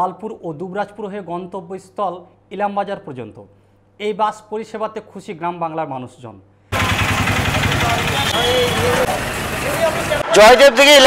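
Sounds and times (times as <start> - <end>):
diesel engine idling: 6.7 - 10.3.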